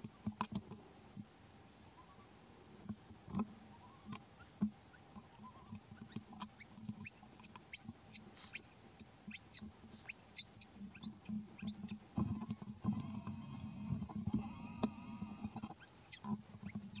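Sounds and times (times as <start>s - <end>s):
rustling and ticking in grass: 0.0s - 17.0s.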